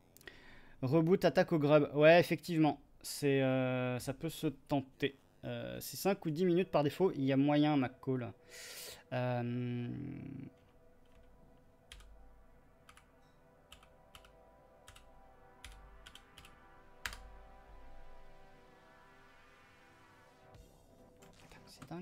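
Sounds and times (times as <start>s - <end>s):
faint background music: 0.0s - 22.0s.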